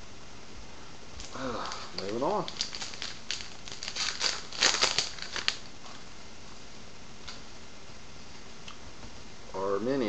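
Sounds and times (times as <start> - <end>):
wrapper crinkling and tearing: 1.2 - 5.7.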